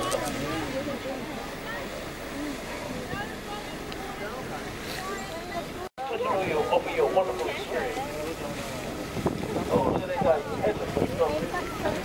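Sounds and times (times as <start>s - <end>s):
people talking indistinctly: 0.0s - 12.0s
wind buffeting microphone: 7.8s - 12.0s.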